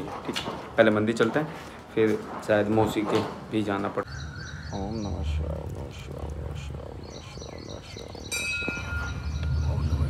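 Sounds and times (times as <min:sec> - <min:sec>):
metallic strike ringing like a bell: 0:08.3 - 0:09.8.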